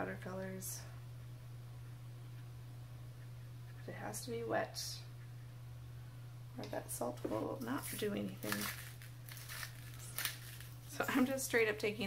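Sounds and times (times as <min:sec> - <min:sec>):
salt grinder grinding: 0:07.8 - 0:10.8.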